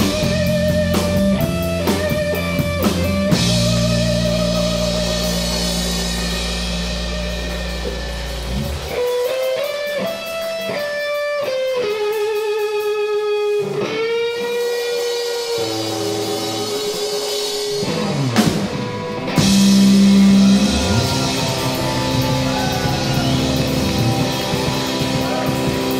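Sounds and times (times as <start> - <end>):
bass guitar: 0.0 - 25.9
drum kit: 0.0 - 25.9
electric guitar: 0.0 - 25.9.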